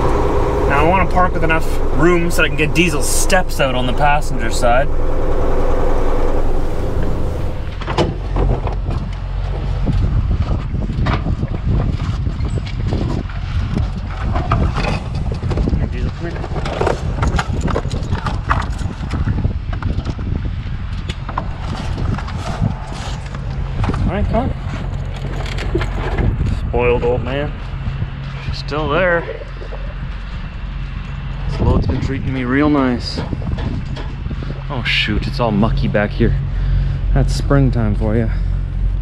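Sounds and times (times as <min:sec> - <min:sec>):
steady low rumble: 0:00.0 - 0:12.0, 0:17.1 - 0:39.0.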